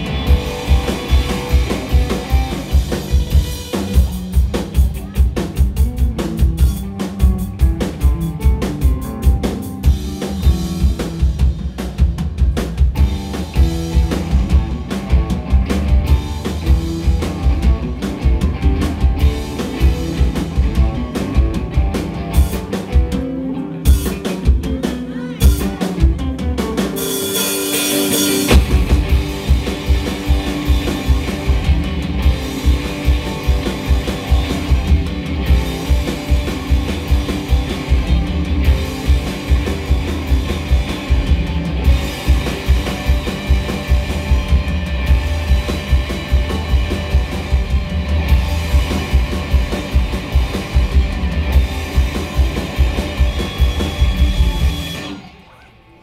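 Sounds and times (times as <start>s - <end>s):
live rock band playing: 0.0s - 55.9s.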